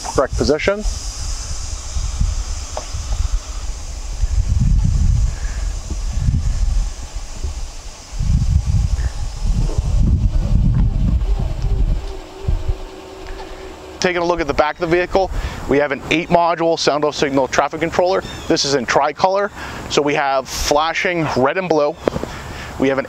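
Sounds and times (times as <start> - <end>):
faint hum: 0.0 - 21.4
wind rumbling on microphone: 0.0 - 21.4
steady hiss of light mast: 0.0 - 23.0.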